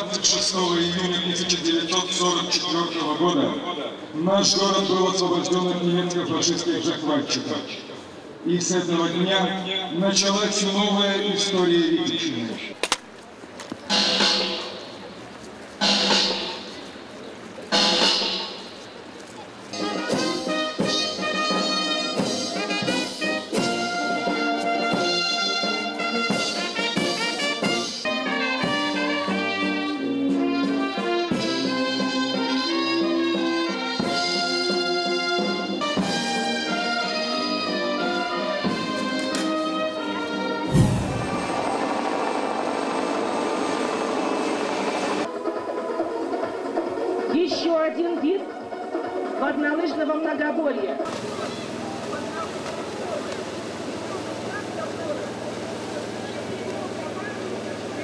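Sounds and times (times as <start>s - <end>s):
rushing noise: 13.8s - 19.1s, 40.5s - 45.3s
brass band playing slow music: 13.9s - 15.1s, 15.8s - 17.0s, 17.7s - 19.1s, 19.7s - 42.4s
short loud burst: 40.7s - 42.5s.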